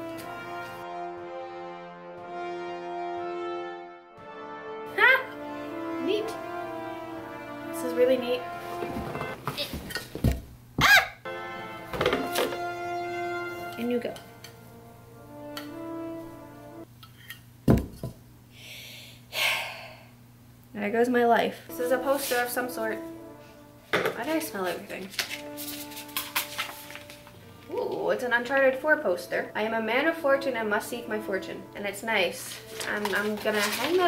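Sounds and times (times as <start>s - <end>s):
background music sustained tones: 0.0s - 9.5s, 11.2s - 17.0s, 21.7s - 34.0s
paper poster crackling: 24.6s - 28.0s, 32.3s - 34.0s
handling sounds: 32.4s - 34.0s.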